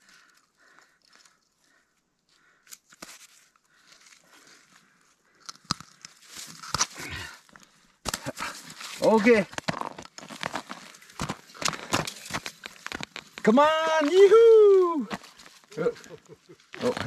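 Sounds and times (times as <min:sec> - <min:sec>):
crunching snow and slush: 0:05.7 - 0:17.0.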